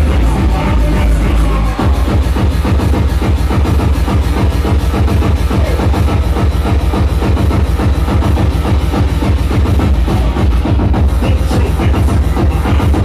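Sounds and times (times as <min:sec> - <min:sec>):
electronic dance music: 0:00.0 - 0:13.0
steady kick drum: 0:00.0 - 0:13.0.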